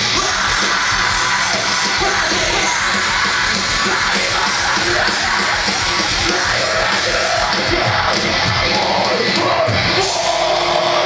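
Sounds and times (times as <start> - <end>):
distorted electric guitars: 0.0 - 11.0
drums: 0.0 - 11.0
screamed vocals: 0.0 - 11.0.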